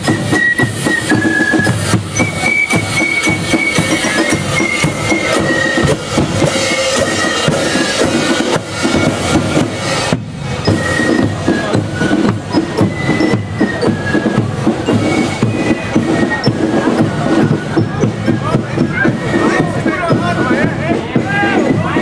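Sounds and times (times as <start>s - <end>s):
fife melody: 0.0s - 22.0s
marching drums and cymbals: 0.0s - 22.0s.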